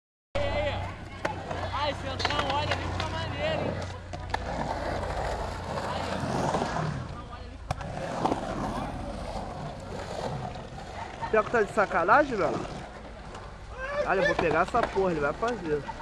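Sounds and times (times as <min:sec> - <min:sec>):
hard wheels rolling on concrete: 0:00.5 - 0:16.0
sharp skateboard clacks: 0:01.2 - 0:08.8, 0:14.3 - 0:16.0.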